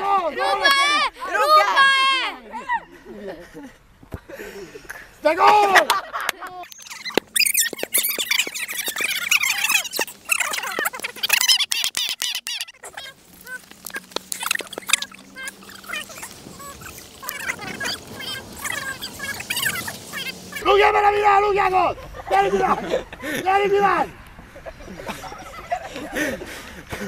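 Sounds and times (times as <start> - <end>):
children shouting: 0.0 - 2.9, 6.8 - 22.8
children laughing: 0.3 - 20.7, 21.6 - 27.0.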